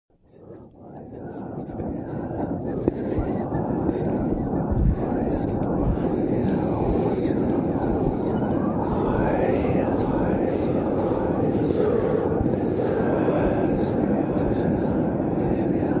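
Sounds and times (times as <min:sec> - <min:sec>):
voices wailing and howling: 0:00.3 - 0:16.0
loud steady rumble: 0:01.0 - 0:14.3.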